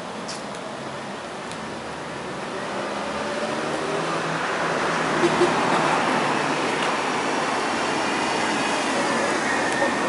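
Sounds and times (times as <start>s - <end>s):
road traffic passing: 0.0s - 10.0s.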